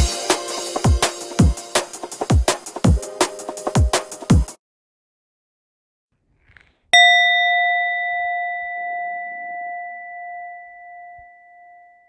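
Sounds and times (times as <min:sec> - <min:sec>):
struck metal bell ringing: 0:07.0 - 0:12.0.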